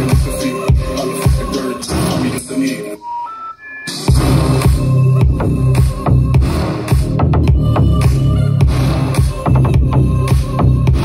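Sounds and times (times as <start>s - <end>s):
bass-heavy electronic music: 0.0s - 11.0s
music from speaker: 0.0s - 11.0s.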